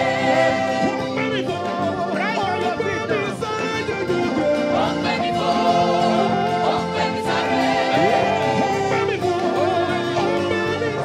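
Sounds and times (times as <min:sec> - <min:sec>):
band playing gospel music: 0:00.0 - 0:11.0
voices singing: 0:00.0 - 0:11.0.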